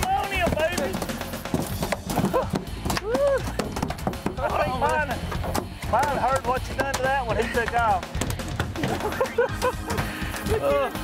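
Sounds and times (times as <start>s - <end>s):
men laughing: 2.0s - 5.2s, 6.2s - 11.0s
men shouting: 2.2s - 3.6s.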